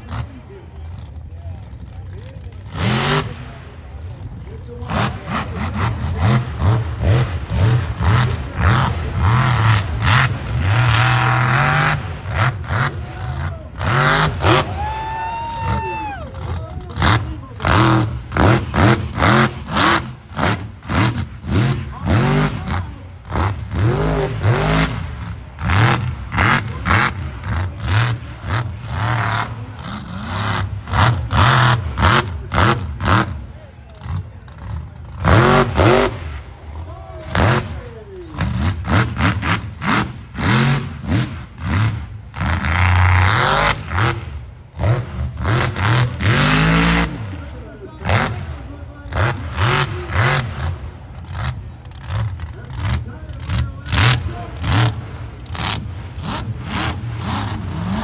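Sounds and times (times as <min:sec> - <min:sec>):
spectators' voices: 0:00.0 - 0:42.4, 0:43.2 - 0:58.0
truck engine revving hard: 0:00.0 - 0:58.0.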